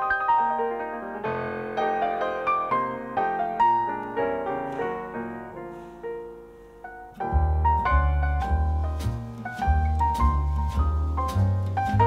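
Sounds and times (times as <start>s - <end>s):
jazz piano melody: 0.0s - 12.0s
deep bass line: 7.2s - 12.0s.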